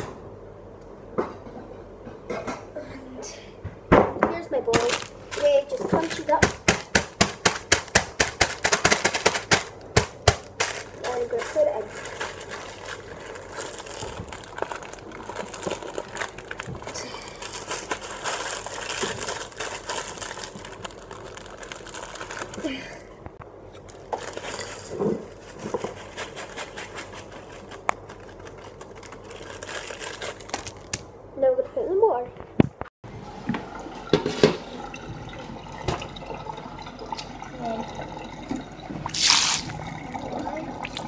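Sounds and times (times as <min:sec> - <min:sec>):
crackling and rustling over a bowl: 0:04.7 - 0:22.9, 0:23.8 - 0:31.0.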